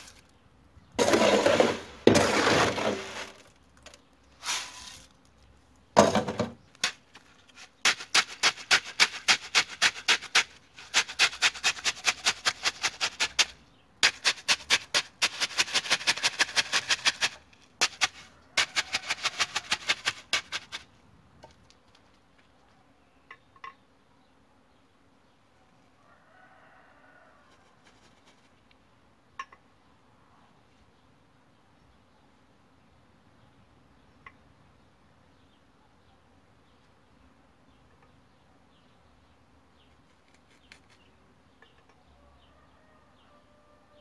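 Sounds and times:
concrete mix poured rattling: 1.0s - 3.6s, 6.2s - 20.8s.

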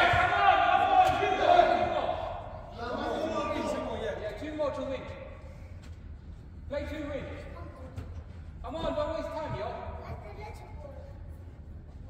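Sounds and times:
men calling out in a hall: 0.0s - 5.3s.

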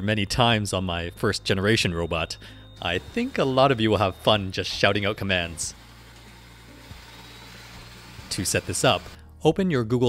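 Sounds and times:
robot vacuum motor hum: 2.8s - 9.2s.

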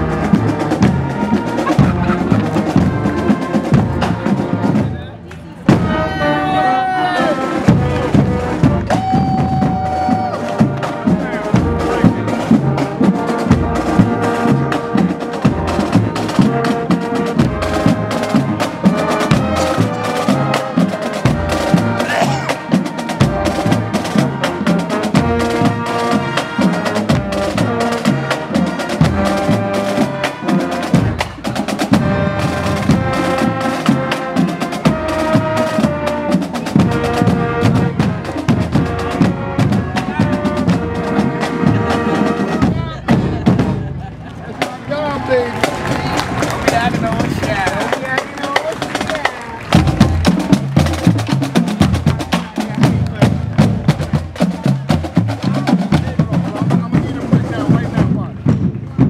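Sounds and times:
bass and snare drums marching beat: 0.0s - 6.4s, 7.2s - 59.0s
brass playing marching tune: 0.0s - 59.0s.

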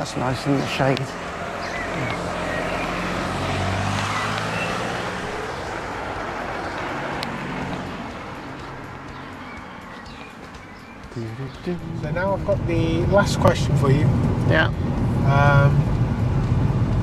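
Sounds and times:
car driving past: 0.0s - 10.8s.

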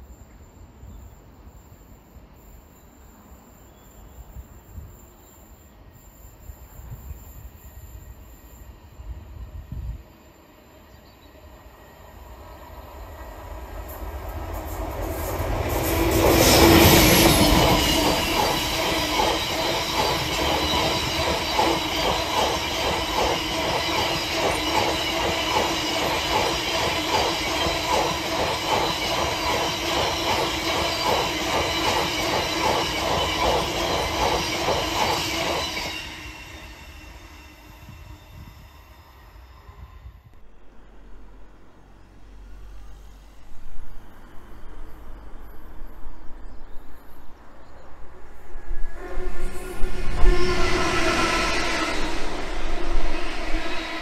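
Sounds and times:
diesel locomotive passing: 6.5s - 54.0s.

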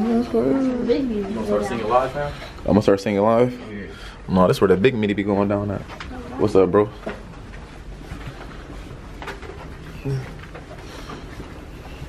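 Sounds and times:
footsteps in a hallway: 5.1s - 12.0s.

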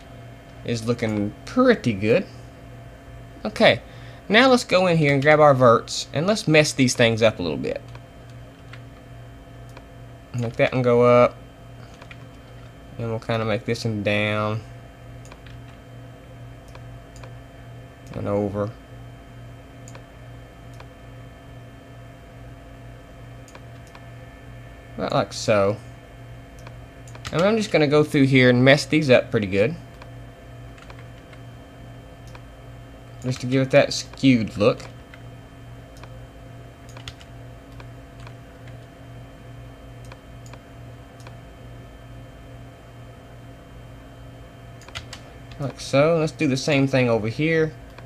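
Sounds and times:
background hum and hiss: 0.0s - 48.0s
low pulsing hum: 0.0s - 48.0s
computer mouse clicks: 15.2s - 15.8s, 19.8s - 20.1s, 20.7s - 20.9s, 26.6s - 27.5s, 30.8s - 31.4s, 32.2s - 32.5s, 36.9s - 38.9s, 40.0s - 40.6s, 41.2s - 41.4s, 44.8s - 45.8s.

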